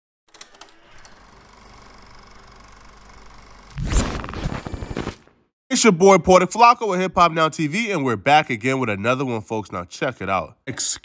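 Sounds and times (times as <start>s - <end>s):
tv static hiss with hum: 3.8s - 5.2s.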